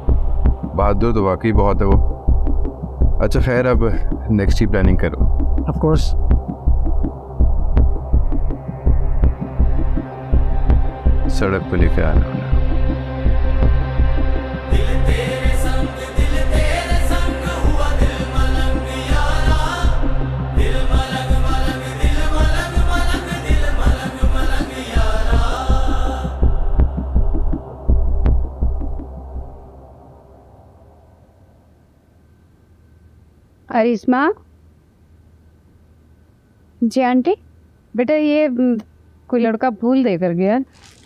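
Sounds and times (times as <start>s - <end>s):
throbbing bass pulse: 0.0s - 29.7s.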